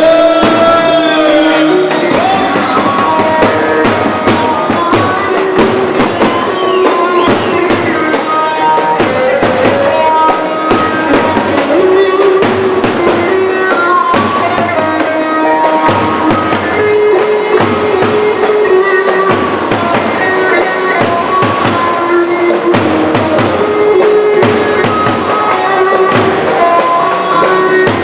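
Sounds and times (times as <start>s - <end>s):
folk dance music with drums: 0.0s - 28.0s.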